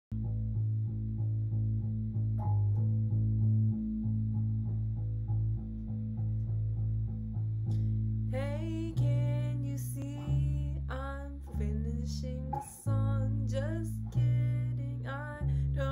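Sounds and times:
electric bass guitar plucked: 0.1s - 15.9s.

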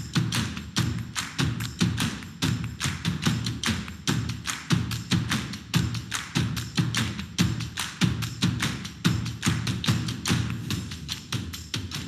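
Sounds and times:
background music with percussive beat: 0.0s - 12.0s.

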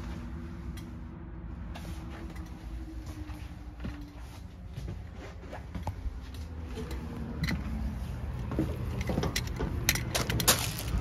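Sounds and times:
footsteps on trailer floor: 1.6s - 11.0s
low rumble: 10.6s - 11.0s.

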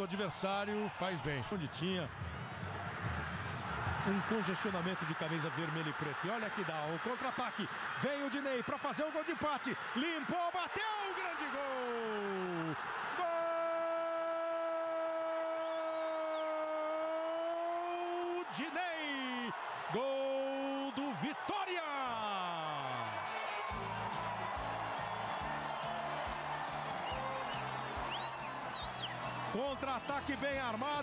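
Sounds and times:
stadium crowd noise: 0.0s - 31.0s
music with steady beat: 23.7s - 31.0s.

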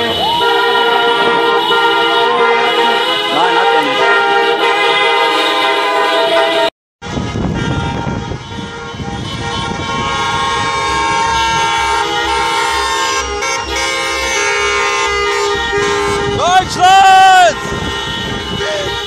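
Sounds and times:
many car horns honking: 0.0s - 19.0s.

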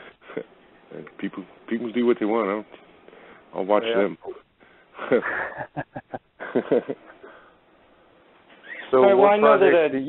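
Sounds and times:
faint steady hiss: 0.0s - 10.0s
man speaking: 3.5s - 4.4s
person laughing: 5.0s - 7.4s.

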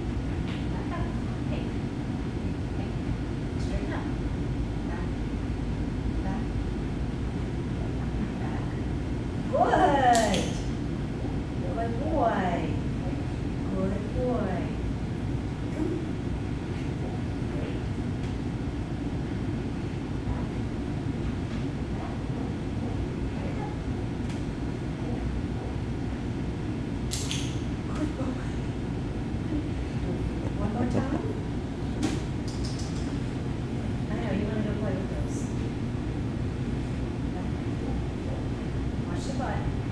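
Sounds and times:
low background rumble: 0.0s - 39.9s
sharp clicks: 32.4s - 33.1s.

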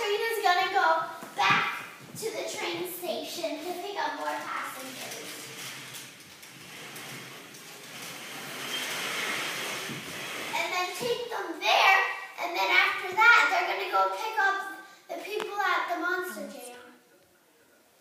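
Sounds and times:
soft steady hissing: 0.0s - 18.0s.

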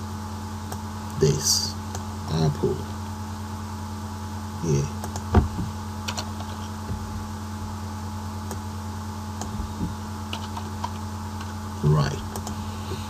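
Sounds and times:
low electrical hum: 0.0s - 13.0s
computer keyboard typing: 6.0s - 6.6s, 9.4s - 11.6s.

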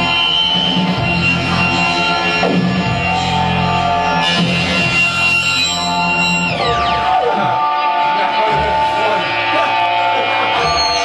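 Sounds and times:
loud distorted noise music band: 0.0s - 11.0s.

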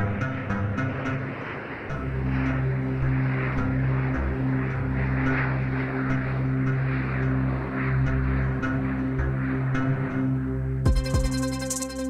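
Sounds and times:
low electronic drone: 0.0s - 12.0s
repeating higher tones: 10.9s - 12.0s.

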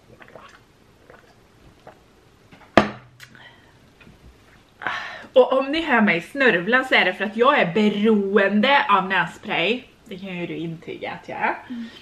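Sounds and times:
person gulping water: 0.0s - 2.1s
glass set down on table: 2.6s - 3.1s.

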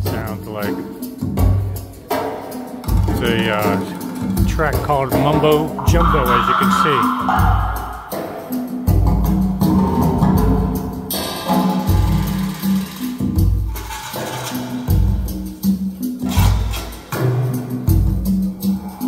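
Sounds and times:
percussion beat with sharp clicks: 0.0s - 19.0s
deep repeating bass notes: 2.9s - 11.1s.

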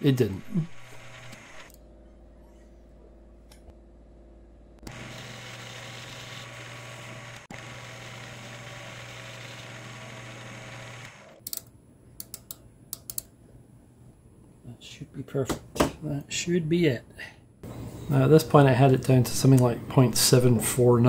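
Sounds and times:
lathe mechanical whirr: 0.0s - 1.8s, 4.8s - 11.6s
sharp clicks: 11.4s - 13.3s.

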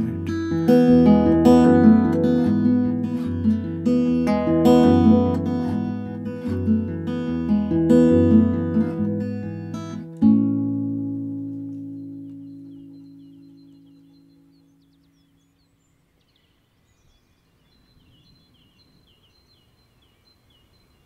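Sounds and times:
acoustic guitar playing: 0.0s - 15.4s.

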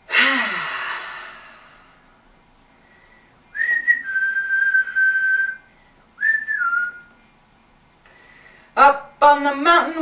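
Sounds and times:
person whistling: 3.5s - 7.1s.

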